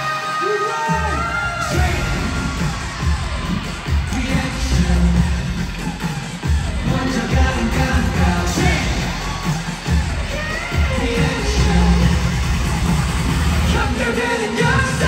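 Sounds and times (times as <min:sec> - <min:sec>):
pop music with heavy bass beat: 0:00.0 - 0:15.0
singing over loudspeakers: 0:00.0 - 0:15.0.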